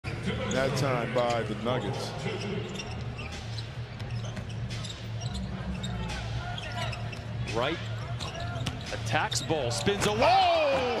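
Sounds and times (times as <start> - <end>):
sneaker squeaks: 1.7 - 11.0.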